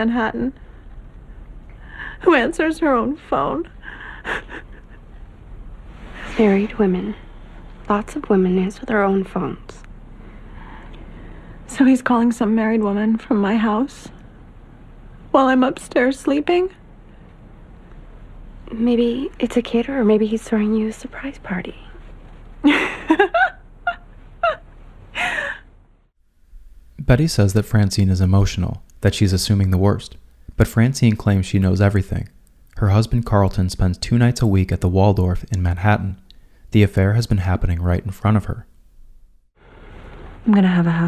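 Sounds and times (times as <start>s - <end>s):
low steady hum: 0.0s - 41.0s
intake of breath: 10.2s - 11.7s
woman gasping: 25.2s - 25.7s.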